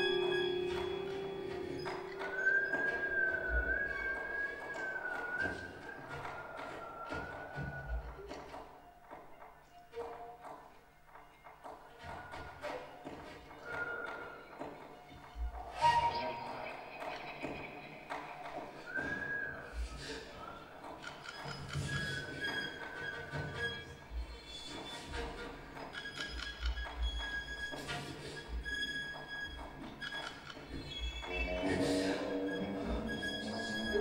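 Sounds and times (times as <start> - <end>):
faint sustained tones: 0.0 - 5.8, 31.2 - 34.0
violin and cello improvising: 0.0 - 6.7, 21.8 - 34.0.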